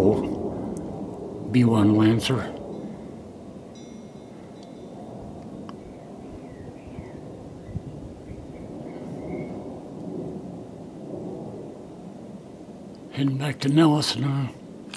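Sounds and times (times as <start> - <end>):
jet engines rumbling overhead: 0.0 - 3.6.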